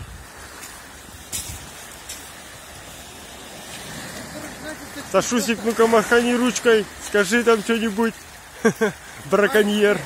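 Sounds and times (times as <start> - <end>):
waves washing on pebbles: 0.0 - 10.0.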